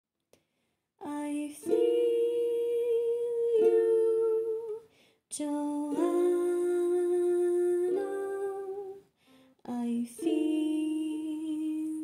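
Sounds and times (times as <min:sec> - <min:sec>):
person humming: 0:01.0 - 0:04.8, 0:05.4 - 0:09.0
strummed ukulele chords: 0:01.3 - 0:04.8, 0:05.6 - 0:08.9, 0:10.1 - 0:12.0.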